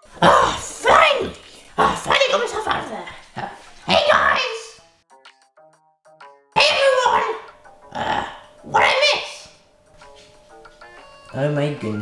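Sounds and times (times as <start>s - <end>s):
person giving loud calls: 0.2s - 4.8s, 6.6s - 9.5s.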